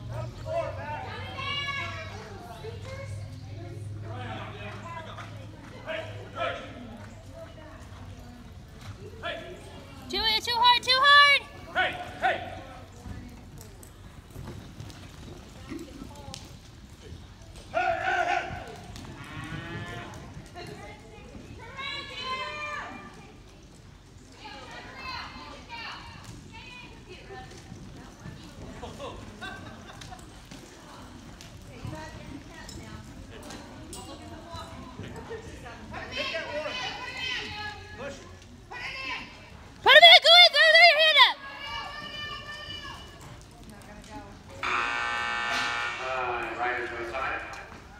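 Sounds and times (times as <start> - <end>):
hooves on soft dirt: 0.0 - 44.6
timer buzzer: 44.6 - 46.4
loud drawn-out call: 44.6 - 47.1.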